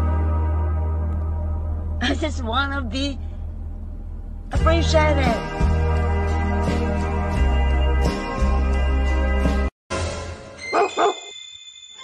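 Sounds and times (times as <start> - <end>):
background music: 0.0 - 11.4
dog barking: 10.7 - 11.3.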